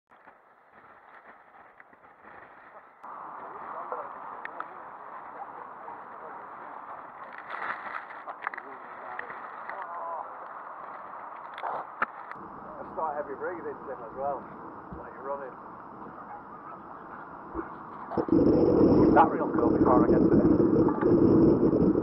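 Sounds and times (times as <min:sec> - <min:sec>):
faint indistinct voices: 0:02.6 - 0:11.0, 0:12.6 - 0:20.3
steady rushing noise: 0:12.4 - 0:22.0.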